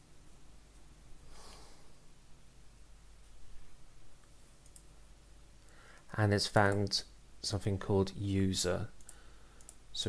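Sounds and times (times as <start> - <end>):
computer mouse clicks: 4.2 - 4.9, 9.0 - 9.8.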